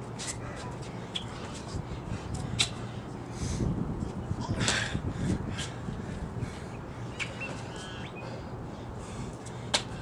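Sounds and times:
sneakers slapping concrete: 9.7s - 10.0s.

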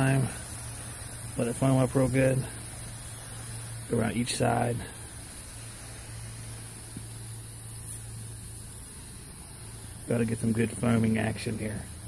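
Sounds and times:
constant low hum: 0.0s - 12.0s
hand-pump sprayer hissing: 0.0s - 12.0s.

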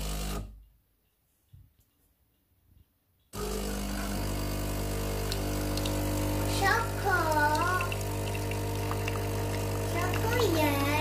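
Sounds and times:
espresso machine pump humming: 0.0s - 0.5s, 3.4s - 11.0s
coffee streaming into mug: 3.4s - 11.0s.

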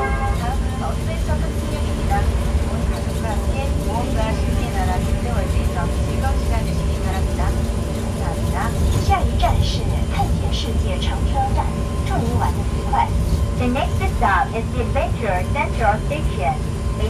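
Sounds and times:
indistinct voices talking: 0.0s - 17.0s
monorail car rumbling: 0.0s - 17.0s.

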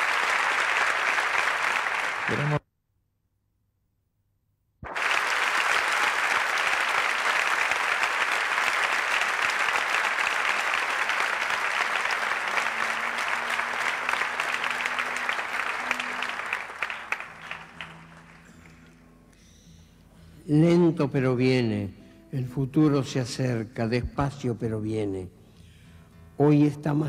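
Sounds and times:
audience applauding: 0.0s - 2.6s, 4.9s - 19.0s.

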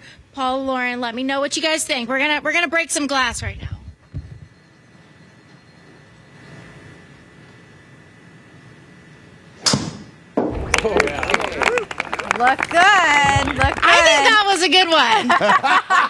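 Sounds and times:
golf club hitting ball: 9.6s - 10.9s.

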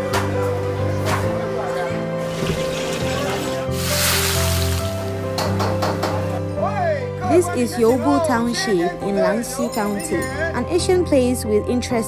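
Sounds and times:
background music sustained notes: 0.0s - 12.0s
buns sizzling in hot oil: 3.7s - 5.2s.

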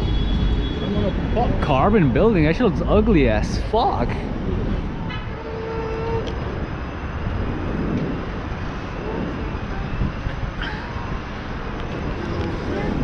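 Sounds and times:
traffic rumble: 0.0s - 13.0s
car horn toot: 5.1s - 6.4s.

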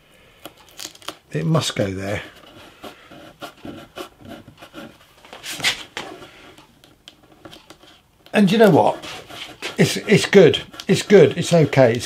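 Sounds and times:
hands rubbing wood veneer: 8.6s - 12.0s.

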